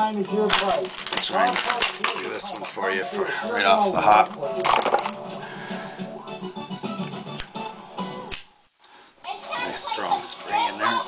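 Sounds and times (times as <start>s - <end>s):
television music: 0.0s - 11.0s
voices talking: 9.3s - 11.0s.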